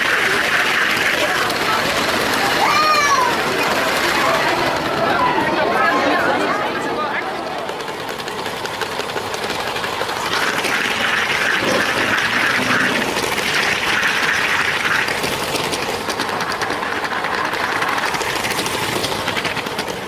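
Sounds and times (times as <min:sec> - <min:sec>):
crowd chatter: 0:00.0 - 0:20.0
toy train rattling on track: 0:00.0 - 0:20.0.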